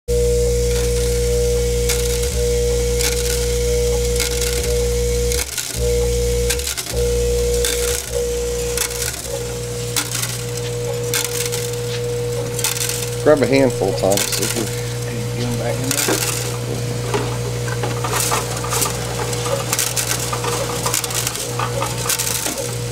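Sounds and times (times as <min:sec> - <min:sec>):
vibratory feeder humming: 0:00.1 - 0:22.9
small metal parts rattling: 0:00.6 - 0:22.9.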